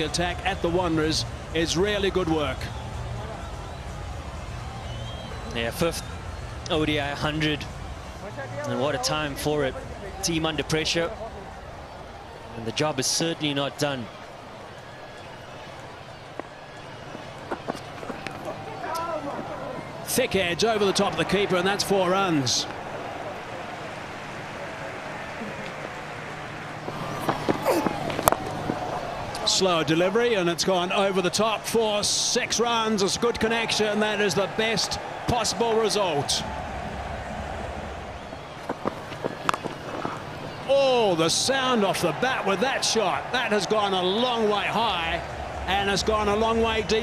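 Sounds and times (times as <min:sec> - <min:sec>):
crowd murmur: 0:00.0 - 0:32.0, 0:32.6 - 0:47.0
crowd voices rising: 0:00.0 - 0:47.0
bowler footsteps: 0:16.3 - 0:20.0, 0:26.8 - 0:29.4, 0:38.2 - 0:40.7.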